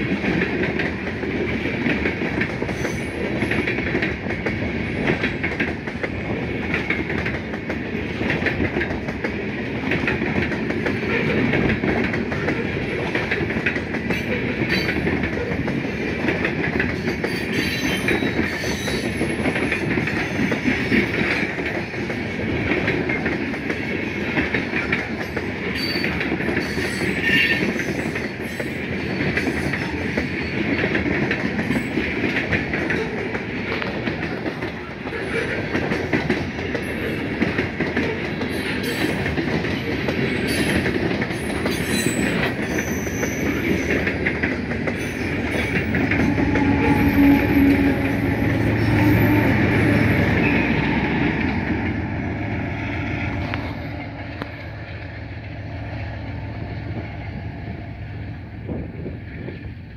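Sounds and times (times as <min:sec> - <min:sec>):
train wheels rumbling on rails: 0:00.0 - 0:59.9.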